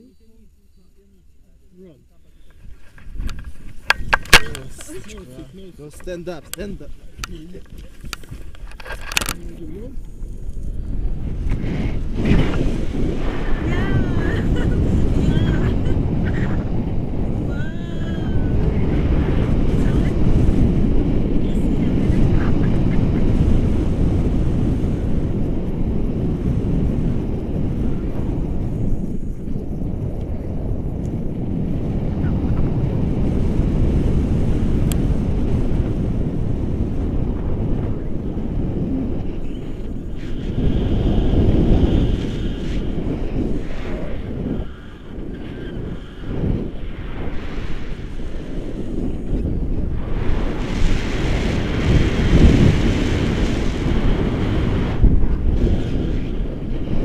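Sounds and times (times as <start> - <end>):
wind rumble on microphone: 0.0 - 57.0.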